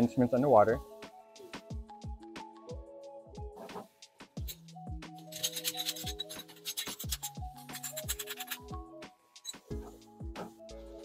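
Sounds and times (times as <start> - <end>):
background music with falling bass: 0.0 - 11.0.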